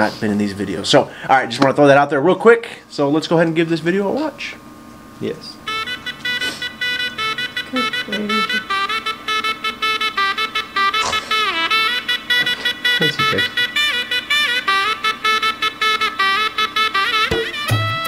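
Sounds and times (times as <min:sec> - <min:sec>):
steady drone: 0:05.6 - 0:17.7
shehnai ornamented melody: 0:05.6 - 0:18.0.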